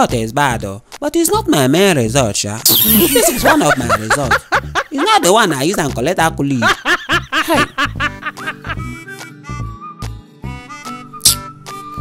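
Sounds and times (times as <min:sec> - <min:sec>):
man laughing exclamation: 0:03.0 - 0:04.6
background music held notes: 0:07.1 - 0:12.0.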